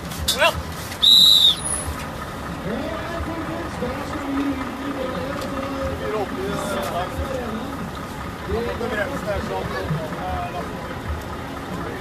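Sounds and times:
high-pitched whistle blast: 1.0s - 1.9s
background voices: 2.2s - 12.0s.

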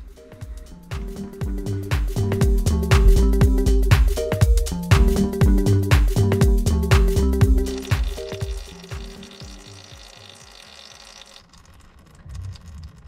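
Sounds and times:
background music with steady beat: 0.0s - 11.1s
oil streaming into drain pan: 7.7s - 13.0s.

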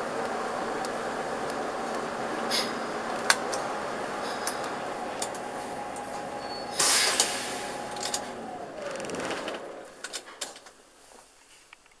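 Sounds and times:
bus interior running noise: 0.0s - 11.3s
clicks: 0.2s - 10.8s
compressed-air hiss: 2.4s - 3.1s, 3.8s - 8.8s.

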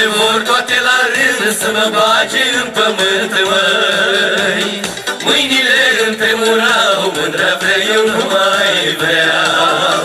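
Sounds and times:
amplified folk accompaniment: 0.0s - 10.0s
male vocal trio singing: 0.0s - 10.0s.

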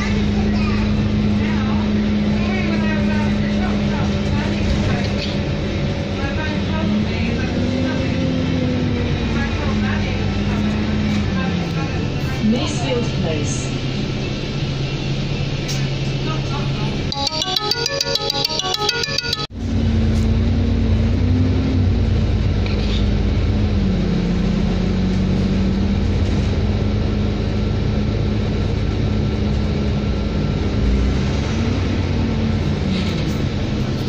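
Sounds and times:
faint passenger chatter: 0.0s - 8.6s, 9.2s - 17.2s
bus driveline drone: 0.0s - 34.0s
low road rumble: 0.0s - 34.0s.

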